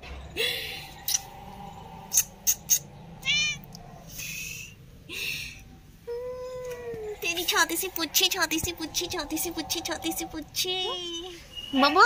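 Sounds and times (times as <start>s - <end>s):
cat meowing: 3.2s - 3.8s.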